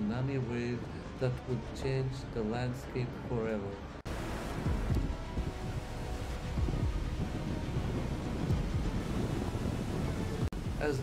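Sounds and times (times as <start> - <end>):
rushing water: 3.1 - 11.0
wind buffeting microphone: 4.1 - 11.0.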